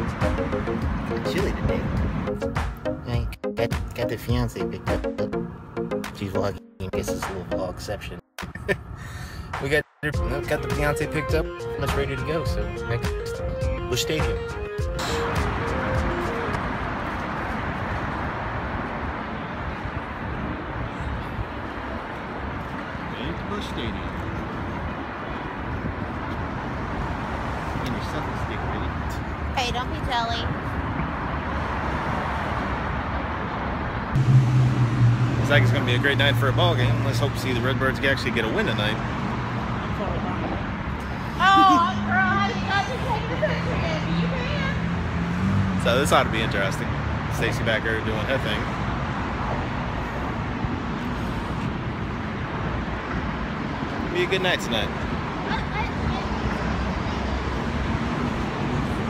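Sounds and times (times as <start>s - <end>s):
traffic: 0.0s - 59.0s.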